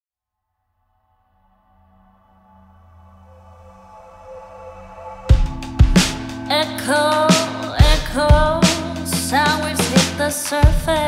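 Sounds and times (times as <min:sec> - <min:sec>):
low bass drone: 0:02.6 - 0:09.9
held synthesizer chord: 0:02.6 - 0:11.0.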